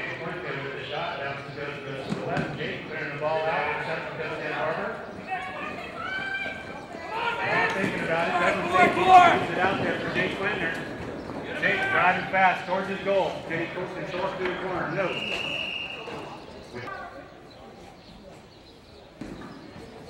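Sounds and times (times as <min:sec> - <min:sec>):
people talking and calling out: 0:00.0 - 0:20.0
horses galloping on dirt: 0:01.1 - 0:16.6.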